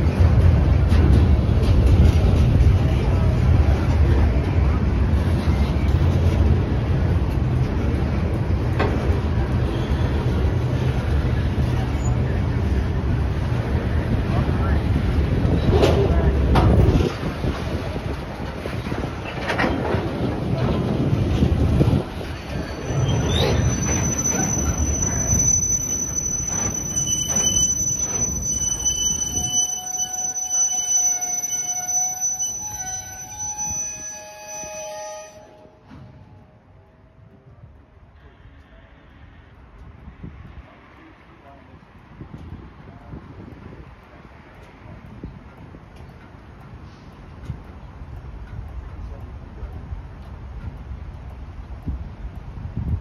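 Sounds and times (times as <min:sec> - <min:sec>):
freight train rumbling past: 0:00.0 - 0:53.0
wheels clicking over rail joints: 0:00.0 - 0:53.0
wheels and brakes squealing: 0:05.2 - 0:06.8, 0:08.8 - 0:12.9, 0:21.4 - 0:36.5.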